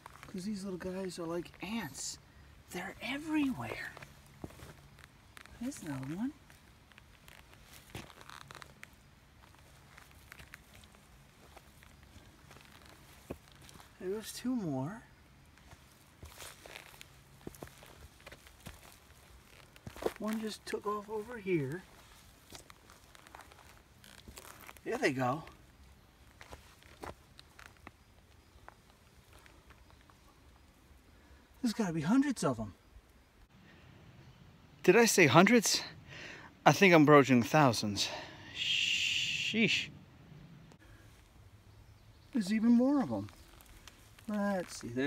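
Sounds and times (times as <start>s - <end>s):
small crackles: 0.0s - 0.6s, 1.5s - 14.3s, 15.0s - 31.7s, 42.4s - 45.0s
footsteps on dry leaves: 3.4s - 14.0s, 15.4s - 24.8s, 25.5s - 30.2s, 43.2s - 45.0s
footsteps rustling through leaves: 15.5s - 24.8s.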